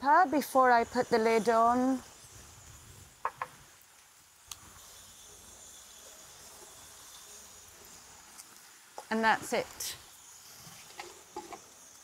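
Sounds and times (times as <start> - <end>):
insect chirring: 0.0 - 12.0.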